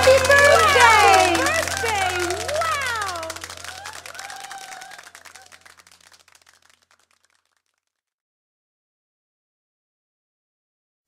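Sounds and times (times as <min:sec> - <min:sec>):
faint voice: 0:00.0 - 0:05.5
group clapping: 0:00.0 - 0:07.9.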